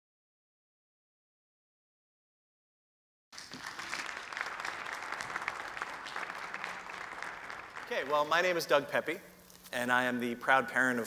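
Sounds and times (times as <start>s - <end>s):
audience applauding: 3.4s - 8.7s.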